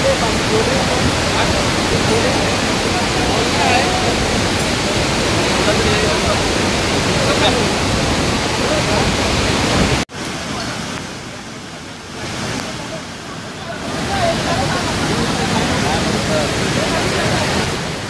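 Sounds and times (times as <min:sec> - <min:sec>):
faint voices: 0:00.0 - 0:18.0
waterfall and flooded river rushing: 0:00.0 - 0:18.0.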